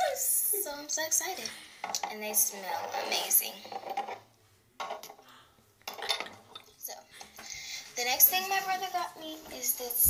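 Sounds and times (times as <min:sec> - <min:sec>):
glass bottles clinking on desk: 0:05.8 - 0:06.8.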